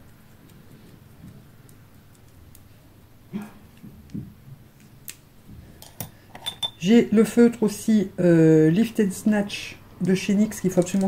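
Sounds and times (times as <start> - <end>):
pencil clicking in fingers: 0.0 - 2.6, 10.0 - 11.0.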